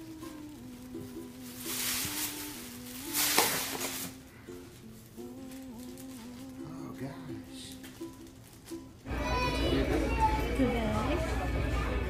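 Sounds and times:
tissue paper rustling: 0.0s - 7.0s, 7.7s - 9.0s
soft music with held notes: 0.0s - 12.0s.

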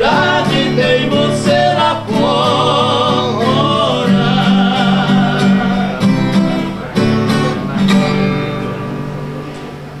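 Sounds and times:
acoustic guitars strumming: 0.0s - 10.0s.

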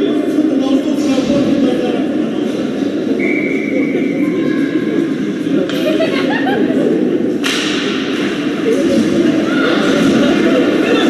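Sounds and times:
murmur of spectators: 0.0s - 11.0s
sharp impact crack in arena: 7.4s - 8.2s.

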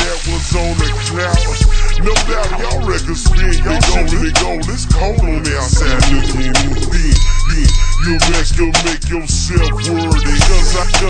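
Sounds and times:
deep bass line: 0.0s - 11.0s
slowed rap vocals: 0.0s - 11.0s
drum beat: 1.6s - 11.0s.

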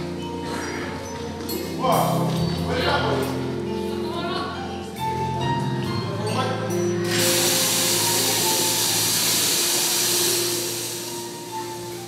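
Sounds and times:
held musical tones: 6.8s - 12.0s
loud steady hiss: 7.0s - 12.0s.

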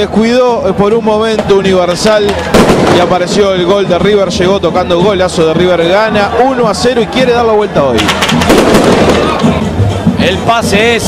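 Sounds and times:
crowd noise: 0.0s - 11.0s
firecracker pops: 1.3s - 3.2s, 8.0s - 9.6s.

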